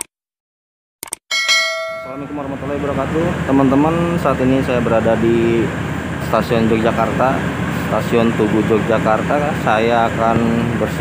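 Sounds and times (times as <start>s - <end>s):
notification bell ding: 1.3s - 2.6s.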